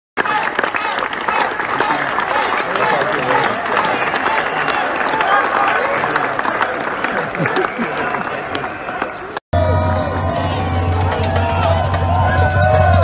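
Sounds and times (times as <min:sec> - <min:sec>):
crowd clapping: 0:00.2 - 0:09.4, 0:10.9 - 0:13.0
voices calling and chattering: 0:00.2 - 0:09.4.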